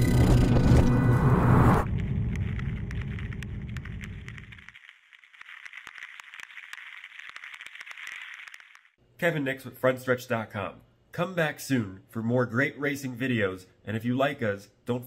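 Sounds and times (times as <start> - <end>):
low rumble: 0.0 - 4.7
crackling hiss with clicks: 2.1 - 9.0.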